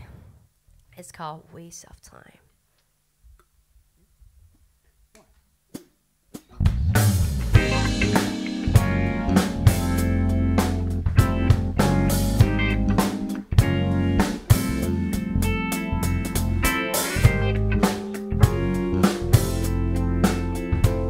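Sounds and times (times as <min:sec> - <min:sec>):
live rock band playing: 0:06.7 - 0:21.0.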